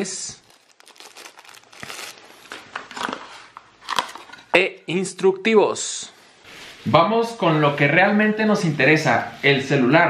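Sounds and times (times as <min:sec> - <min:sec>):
tissue paper and cardboard rustling: 0:00.4 - 0:03.5.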